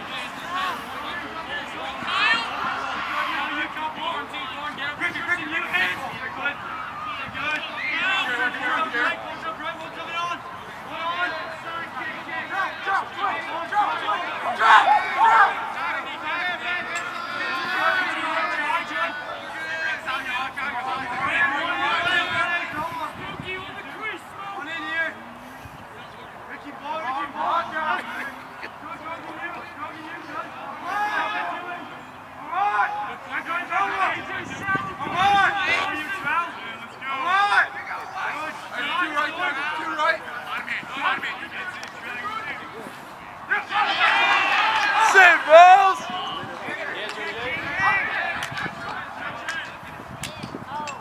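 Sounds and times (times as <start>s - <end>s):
voices shouting: 0.0s - 51.0s.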